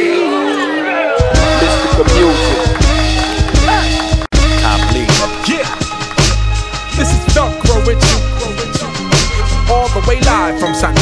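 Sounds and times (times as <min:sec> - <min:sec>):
hip hop beat with heavy bass: 0:01.2 - 0:11.0.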